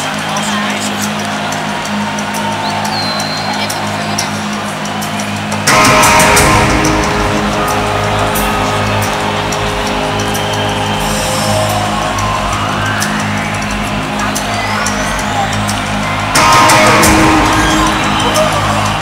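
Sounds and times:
live rock band playing: 5.6 - 19.0
sustained low synth notes: 5.6 - 19.0
rising sweeping tone: 5.7 - 19.0.

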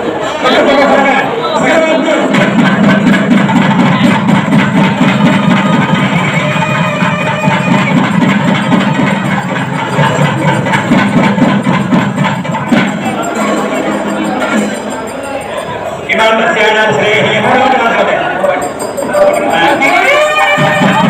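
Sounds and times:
loud fast rhythmic music: 0.5 - 15.5, 16.2 - 21.0.

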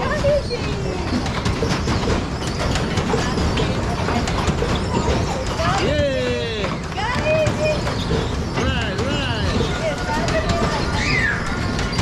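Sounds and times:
carnival ride rumble: 0.0 - 12.0.

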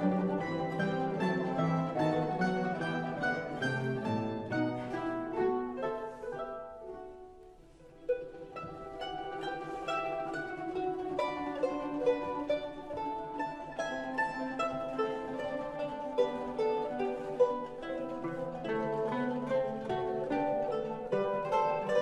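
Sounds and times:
mandolin orchestra playing: 0.0 - 22.0.

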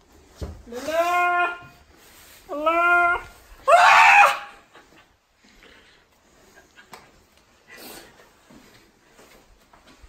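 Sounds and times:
high-pitched vocal cry: 0.7 - 1.8, 2.5 - 4.6
playful shriek: 2.5 - 4.6.

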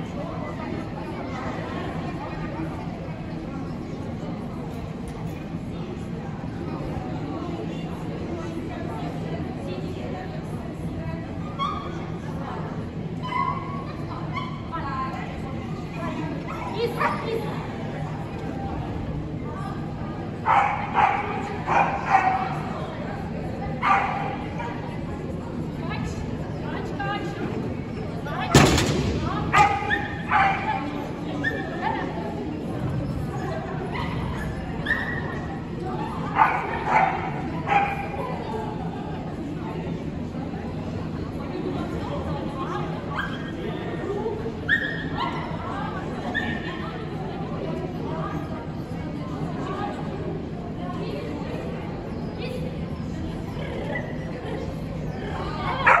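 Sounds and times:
chatter echoing in a hall: 0.0 - 56.0.

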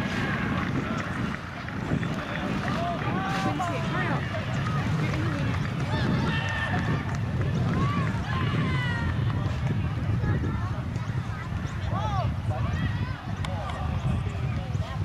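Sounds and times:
people shouting and calling: 0.0 - 15.0
wind rumble on microphone: 0.0 - 15.0.

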